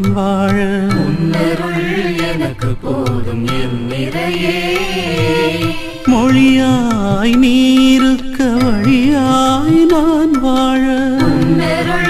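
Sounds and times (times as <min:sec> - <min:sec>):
instrumental accompaniment: 0:00.0 - 0:12.0
person singing devotional song: 0:00.0 - 0:12.0.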